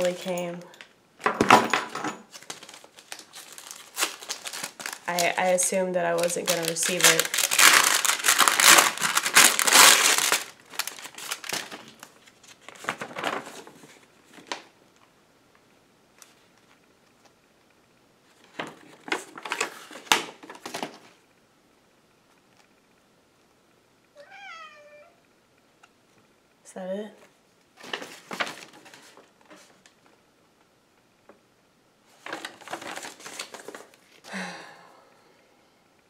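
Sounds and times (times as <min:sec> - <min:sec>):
paper envelope crinkling and rustling: 0:02.3 - 0:14.8, 0:18.2 - 0:21.2, 0:27.7 - 0:30.2, 0:32.1 - 0:34.3
cat meowing: 0:24.2 - 0:25.2.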